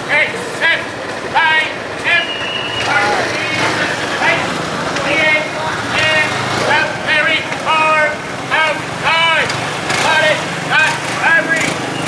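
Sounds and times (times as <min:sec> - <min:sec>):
scooter engines humming: 0:00.0 - 0:12.0.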